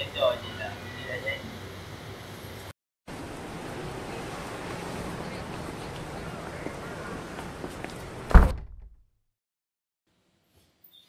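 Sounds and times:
wooden door shutting thud: 8.3s - 9.0s.

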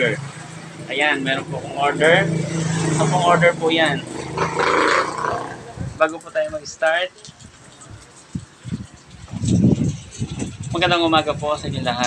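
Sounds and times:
rough vocal sound: 0.0s - 6.0s.

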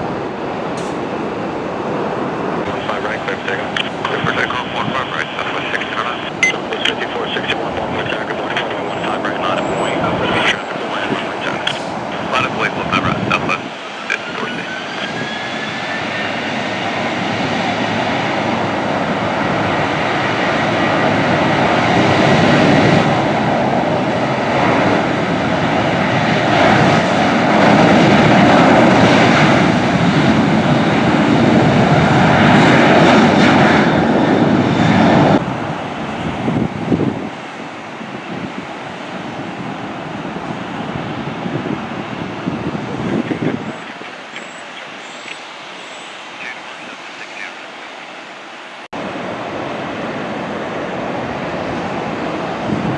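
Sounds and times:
jet engines spooling up and roaring: 0.0s - 52.9s.

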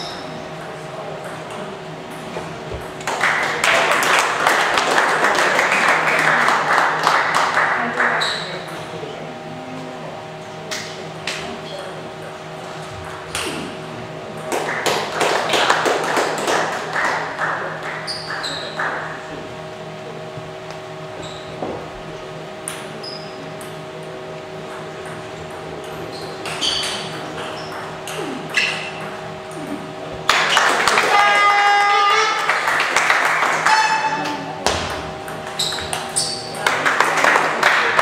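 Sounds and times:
steady hum: 0.0s - 38.0s.

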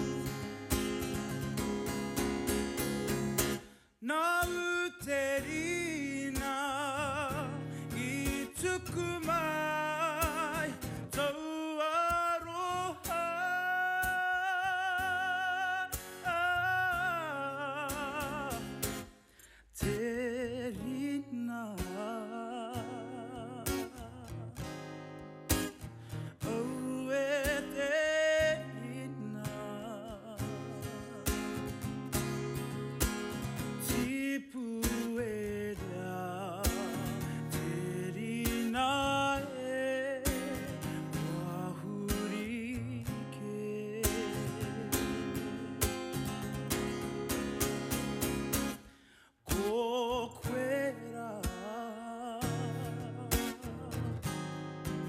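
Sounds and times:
man singing with vibrato: 0.0s - 24.9s, 25.6s - 55.0s
strummed acoustic guitar: 0.0s - 55.0s.

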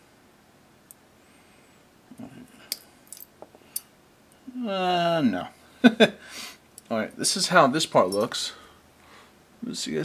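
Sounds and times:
sharp click of small metal parts: 2.7s - 3.9s.

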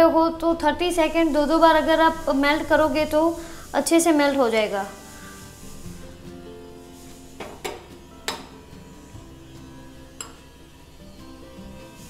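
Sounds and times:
background music: 0.0s - 12.0s
metal spoon clinking glass bowl: 10.2s - 10.5s.

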